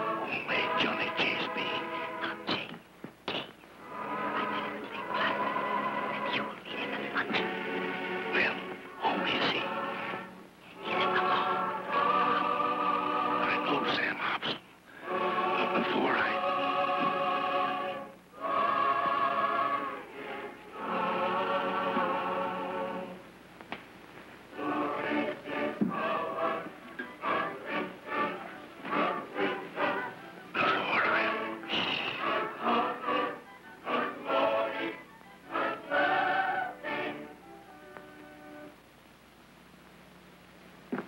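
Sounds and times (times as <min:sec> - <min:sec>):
church choir singing a hymn: 0:00.0 - 0:02.4, 0:03.8 - 0:13.9, 0:15.0 - 0:23.2, 0:24.6 - 0:37.4.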